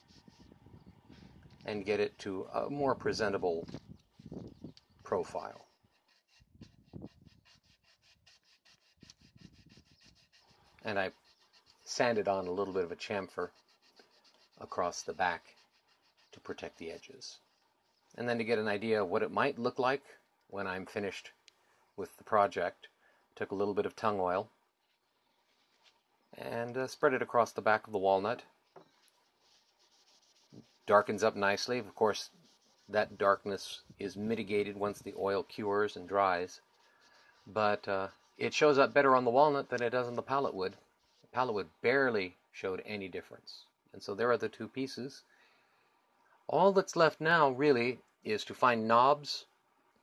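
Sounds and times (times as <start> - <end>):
sandpaper rubbing on wood: 5.2 - 17.6, 29.0 - 41.3.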